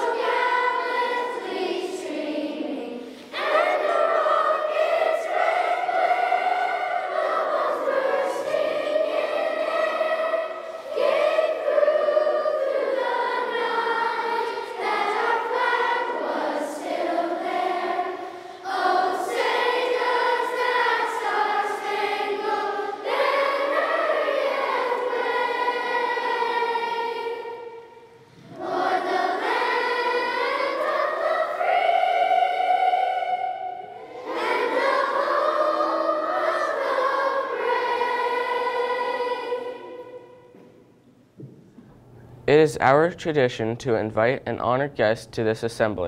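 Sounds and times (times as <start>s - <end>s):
choir singing: 0.0s - 40.8s
singers breathing: 2.9s - 3.4s, 10.5s - 11.0s, 18.2s - 18.7s, 28.0s - 28.6s.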